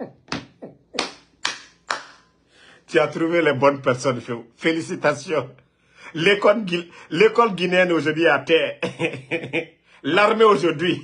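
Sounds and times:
man clapping hands slowly: 0:00.3 - 0:02.3.

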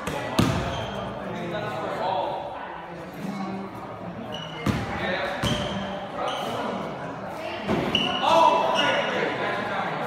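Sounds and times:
basketball bouncing on court floor: 0:00.4 - 0:00.8, 0:04.6 - 0:05.8
shoe squeaks: 0:00.6 - 0:01.2, 0:04.2 - 0:04.7, 0:05.4 - 0:06.8, 0:07.8 - 0:09.2.

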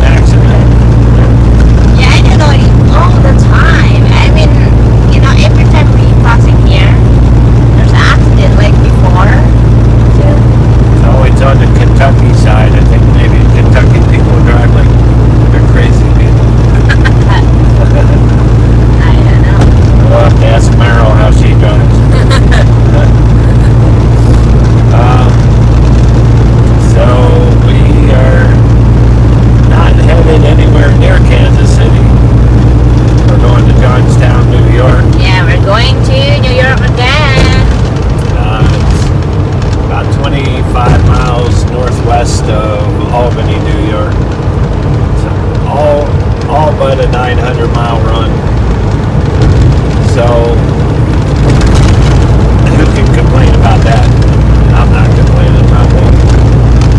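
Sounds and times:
indistinct voices: 0:00.0 - 0:56.9
truck diesel engine and tyres droning: 0:00.0 - 0:56.9.

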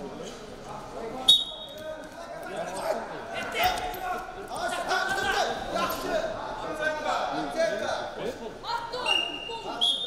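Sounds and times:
voices echoing in hall: 0:00.0 - 0:10.0
referee's whistle blast: 0:01.3 - 0:01.8.

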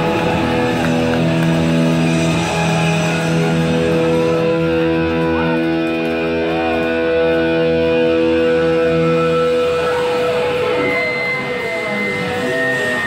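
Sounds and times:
electric guitars ringing chord: 0:00.0 - 0:13.0.

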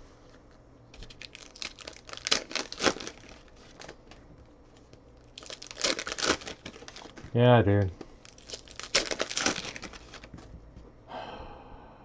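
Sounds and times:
handling of cards: 0:00.2 - 0:10.8
wrapper crinkling and tearing: 0:01.0 - 0:04.2, 0:04.8 - 0:07.4, 0:08.2 - 0:10.4.

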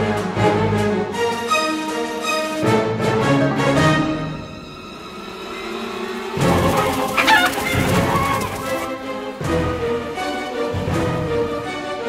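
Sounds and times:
orchestral cartoon music: 0:00.0 - 0:12.0.

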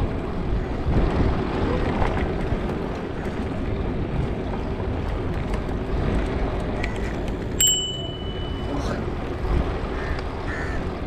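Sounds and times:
bicycle tyres rolling over bricks: 0:00.0 - 0:08.2
wind rumbling on microphone: 0:00.0 - 0:11.0
thin high tone: 0:07.6 - 0:09.0.

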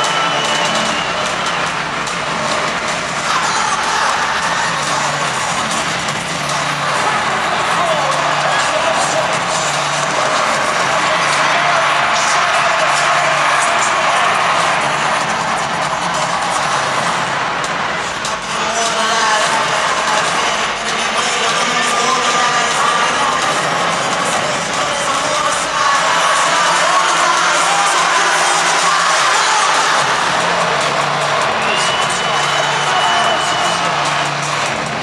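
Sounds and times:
crowd cheering: 0:00.0 - 0:35.0
music over loudspeakers: 0:00.0 - 0:35.0.

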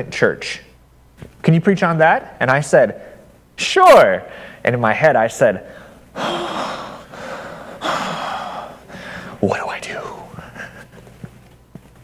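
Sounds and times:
man sighing heavily: 0:06.2 - 0:09.4.

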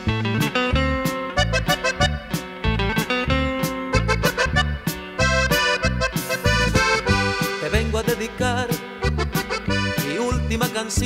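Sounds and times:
accordion melody: 0:00.0 - 0:11.0
bass and drum beat: 0:00.0 - 0:11.0
guitar: 0:00.0 - 0:11.0.

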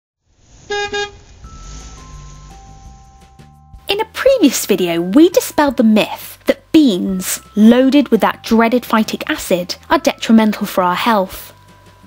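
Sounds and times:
vehicle horn toots: 0:00.7 - 0:01.4.

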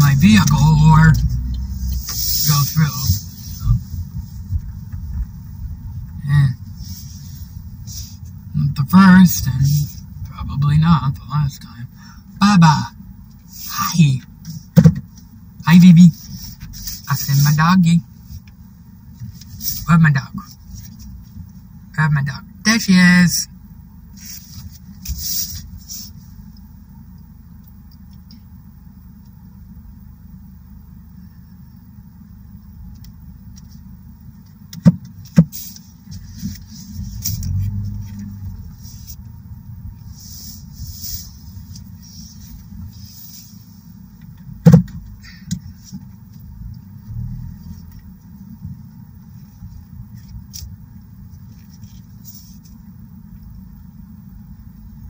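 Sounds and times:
vehicle idling rumble: 0:00.0 - 0:55.0.

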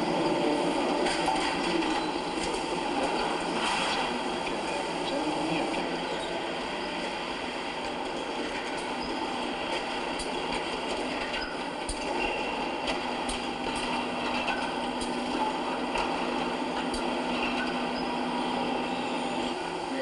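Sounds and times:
factory machinery running: 0:00.0 - 0:20.0.

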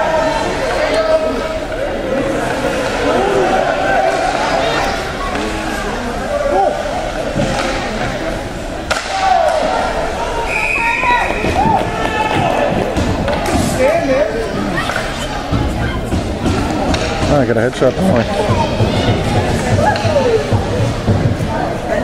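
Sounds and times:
spectators shouting: 0:00.0 - 0:07.6, 0:08.9 - 0:17.2, 0:18.0 - 0:21.0
sticks and puck knocking: 0:14.9 - 0:21.4.

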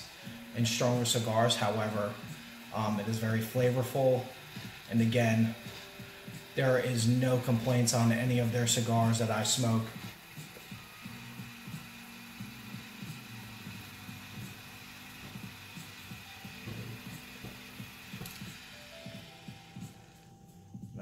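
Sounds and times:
lighter hissing: 0:00.0 - 0:20.9.

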